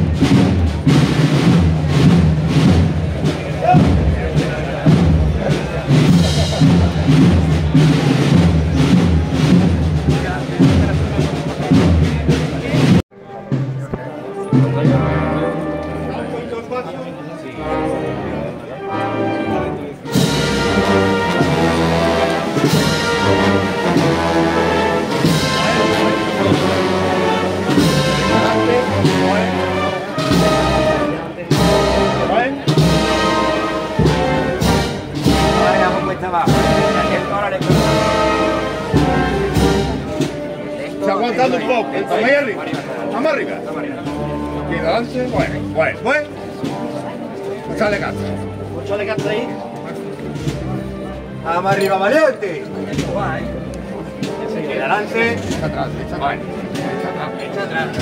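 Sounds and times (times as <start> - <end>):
wind band playing a march: 0.0 - 58.0.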